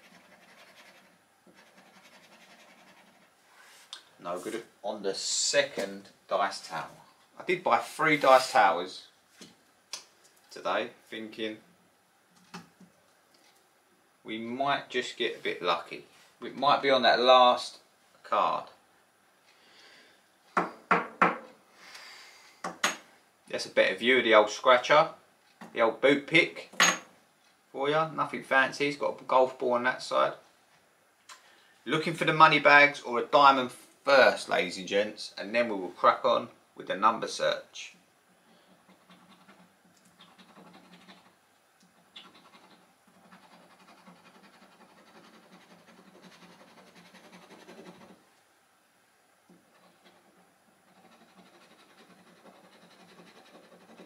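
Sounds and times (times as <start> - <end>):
faint rasp: 38.4 - 48.2, 49.5 - 54.0
metal tool scraping scratchcard: 38.8 - 41.4, 42.1 - 48.2, 49.7 - 54.0.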